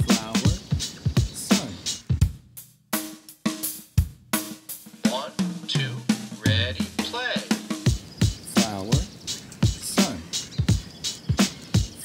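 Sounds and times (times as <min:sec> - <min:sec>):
drum-kit beat: 0:00.0 - 0:12.0.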